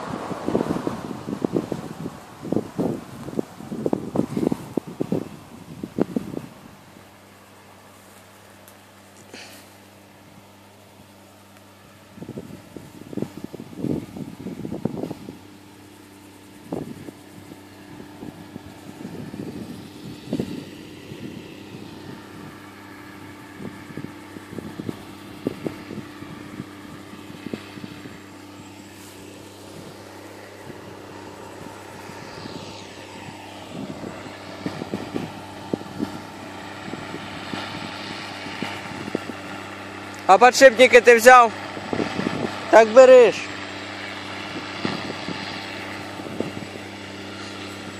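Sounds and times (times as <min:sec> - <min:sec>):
tractor diesel engine drone: 0:00.0 - 0:47.9.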